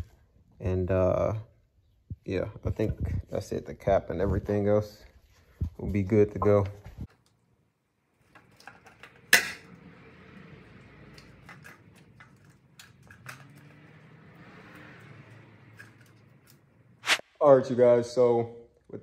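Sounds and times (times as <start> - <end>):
plastic parts clicking and knocking: 11.1 - 13.9.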